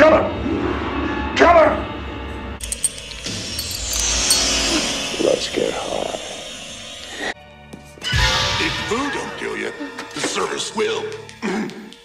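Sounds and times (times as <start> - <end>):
horror score music: 0.0 - 12.0.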